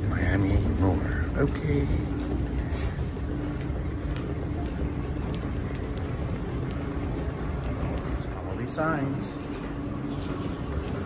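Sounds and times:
low hum: 0:00.0 - 0:11.0
suitcase wheels rolling: 0:00.0 - 0:11.0.

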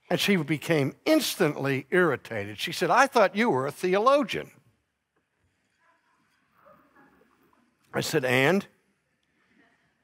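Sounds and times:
man speaking: 0:00.0 - 0:04.6, 0:07.8 - 0:08.8.

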